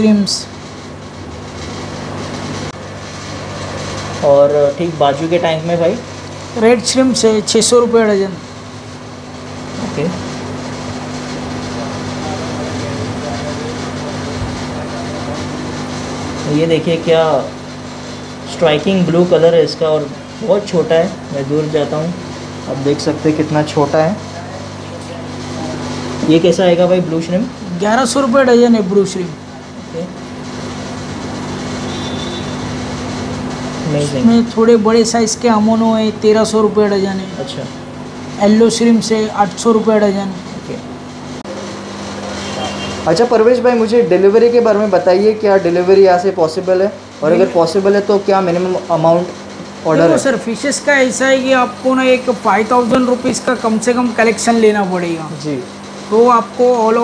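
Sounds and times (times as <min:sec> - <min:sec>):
low machinery hum: 0:00.0 - 0:57.0.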